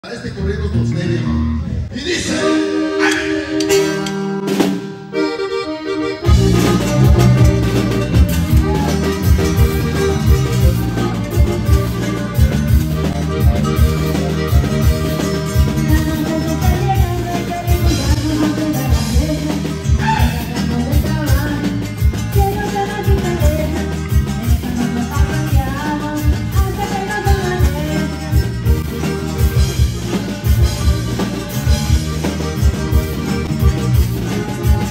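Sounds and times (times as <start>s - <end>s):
accordion playing chords: 0.0s - 34.9s
bass and drums beat: 3.0s - 34.9s.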